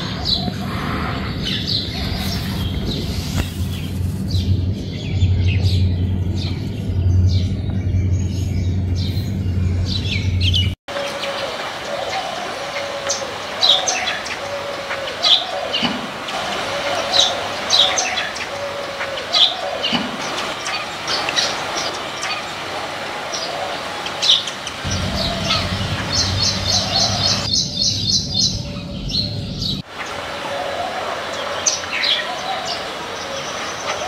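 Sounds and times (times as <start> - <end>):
small birds chirping: 0.0 - 34.0
low rumble: 0.2 - 10.8, 24.8 - 29.8.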